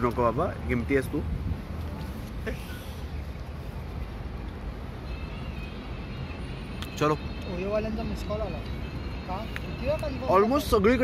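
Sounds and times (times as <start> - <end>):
road traffic: 0.0 - 11.0
wind rumble on microphone: 0.6 - 2.4
faint high steady tone: 5.0 - 11.0.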